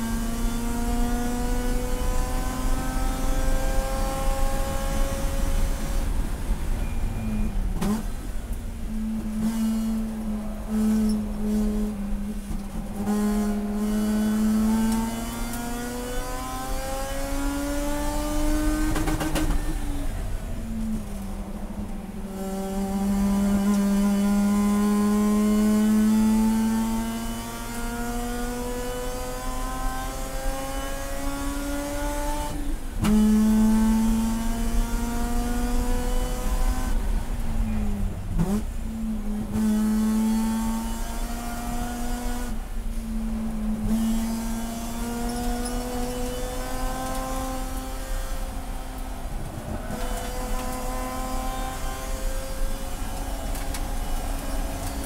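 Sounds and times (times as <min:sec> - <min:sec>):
race car rotary engine: 0:00.0 - 0:55.0.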